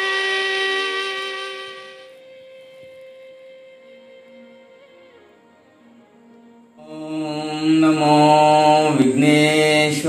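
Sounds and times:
conch shell blown: 0:00.0 - 0:07.1
background music held tone: 0:00.0 - 0:09.8.

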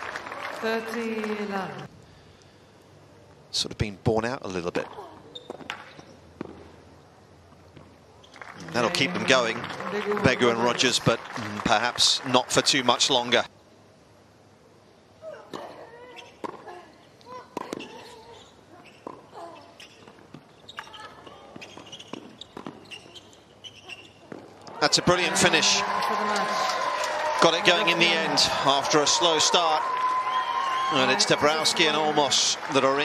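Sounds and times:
racquets hitting tennis ball: 0:18.8 - 0:25.8.

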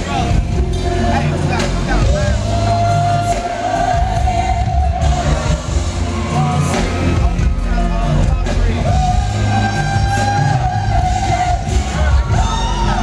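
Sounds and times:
live band playing: 0:00.0 - 0:13.0
man singing into a microphone: 0:00.0 - 0:13.0.

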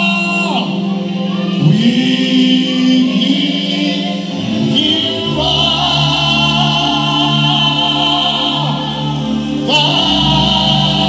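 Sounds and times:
gospel singers with band: 0:00.0 - 0:11.0.

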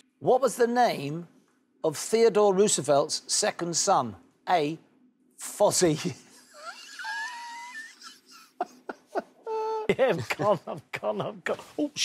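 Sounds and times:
man laughing squeal: 0:06.4 - 0:10.0.

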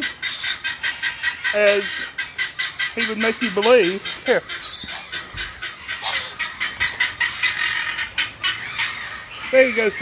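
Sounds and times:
guineafowl chattering: 0:00.0 - 0:10.0.

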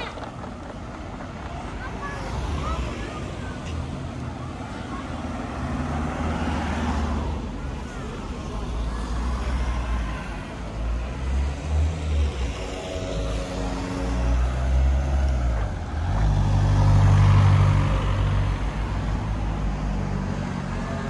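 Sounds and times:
cars driving past: 0:00.0 - 0:21.0.

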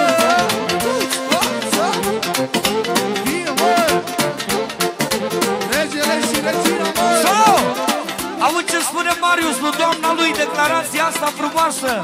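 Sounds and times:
violin melody: 0:00.0 - 0:11.0
steady driving beat: 0:00.0 - 0:12.0.

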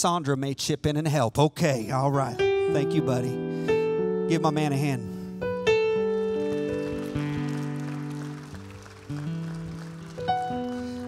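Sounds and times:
electric keyboard chords: 0:01.9 - 0:11.0.

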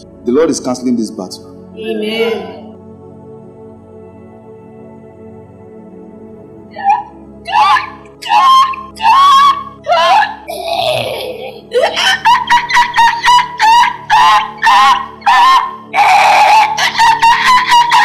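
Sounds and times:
sustained keyboard music: 0:00.0 - 0:18.0
woman screaming and wailing: 0:06.7 - 0:18.0.

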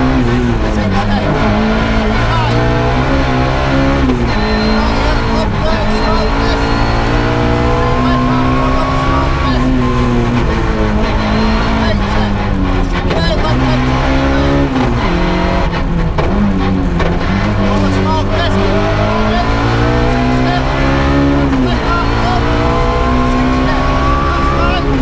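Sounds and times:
rally car engine revving: 0:00.0 - 0:25.0
road and tyre noise: 0:00.0 - 0:25.0.

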